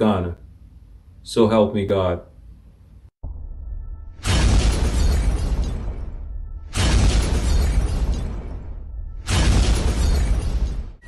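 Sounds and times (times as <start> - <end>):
low rumbling drone: 3.2 - 10.3
loud cinematic crash hit: 4.1 - 11.0.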